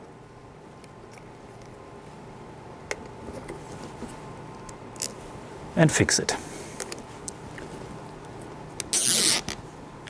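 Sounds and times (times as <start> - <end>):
cable tie zip: 8.8 - 9.6.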